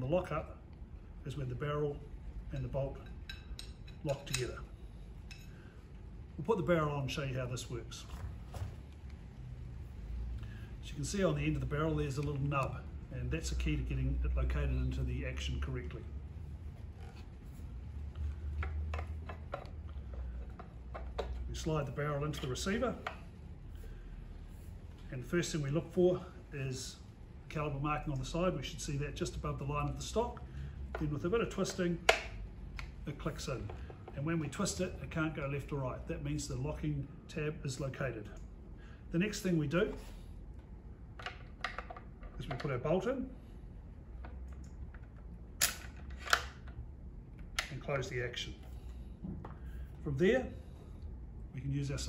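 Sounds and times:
steady low hum: 0:00.0 - 0:52.0
rifle bolt metallic clicks: 0:45.6 - 0:46.8.

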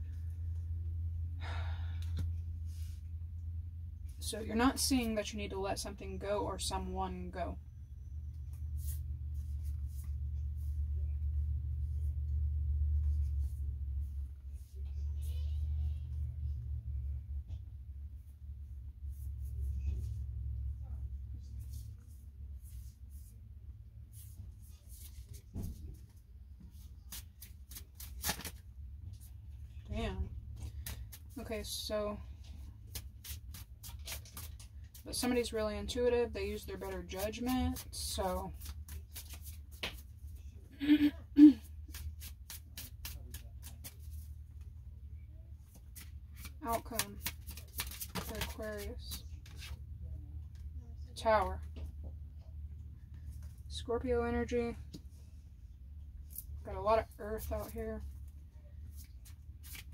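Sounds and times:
low hum: 0:00.0 - 0:27.1
cards being shuffled: 0:26.7 - 0:29.4, 0:30.6 - 0:31.4, 0:32.7 - 0:35.3, 0:36.8 - 0:40.3, 0:41.8 - 0:44.3, 0:45.7 - 0:49.8, 0:58.9 - 0:59.9
woman sighing: 0:40.8 - 0:41.7.

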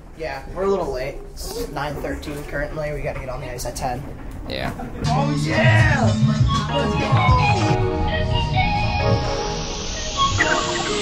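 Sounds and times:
background music: 0:05.0 - 0:11.0
rising whoosh of noise: 0:07.1 - 0:11.0.

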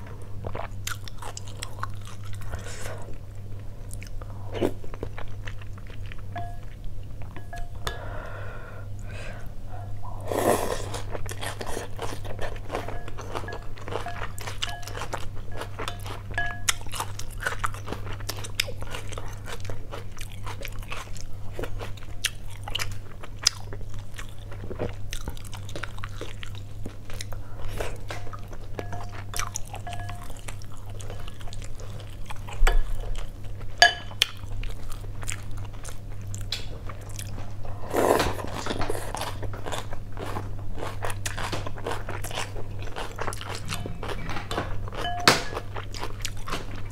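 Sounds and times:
steady low hum: 0:00.0 - 0:46.9
wet mouth clicks and chewing: 0:11.0 - 0:33.3.

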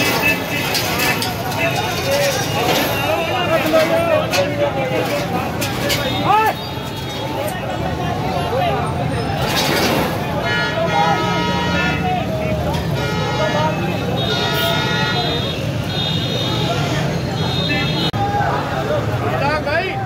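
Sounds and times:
vehicle horn blasts: 0:10.4 - 0:12.0, 0:12.9 - 0:16.6.

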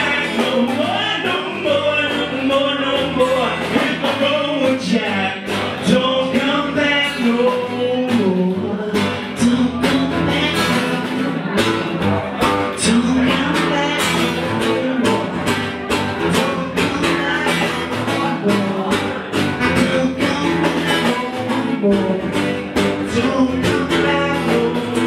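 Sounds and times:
acoustic guitar strumming: 0:00.0 - 0:25.0
steady drum beat: 0:00.0 - 0:25.0.

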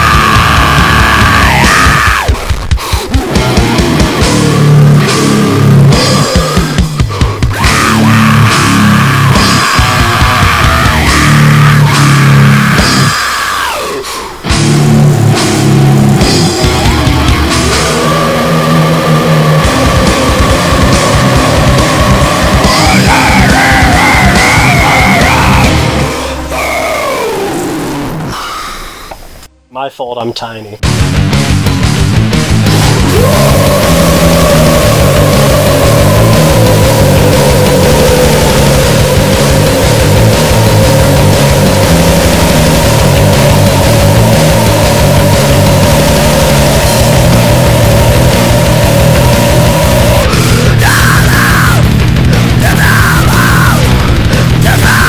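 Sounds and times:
distorted guitar and bass: 0:00.0 - 0:28.4, 0:30.8 - 0:55.0
rapid low pulsing: 0:14.4 - 0:26.2, 0:30.9 - 0:54.8
fast dense drumming: 0:14.5 - 0:25.9, 0:30.8 - 0:55.0
steady high whine: 0:32.6 - 0:55.0.

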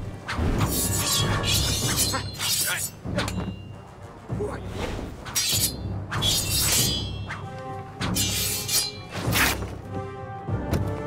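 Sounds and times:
orchestral film music: 0:00.0 - 0:11.0
sword blades clashing and swishing: 0:00.2 - 0:03.7, 0:05.2 - 0:09.7.

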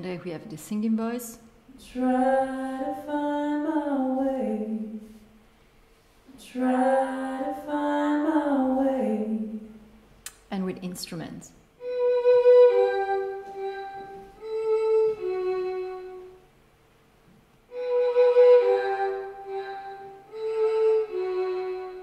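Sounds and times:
solo instrument sustained notes: 0:11.8 - 0:16.5, 0:17.7 - 0:22.0.

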